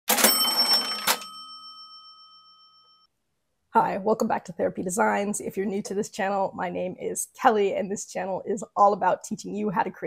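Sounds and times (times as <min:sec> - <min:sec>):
bell-like ring: 0:00.1 - 0:03.1.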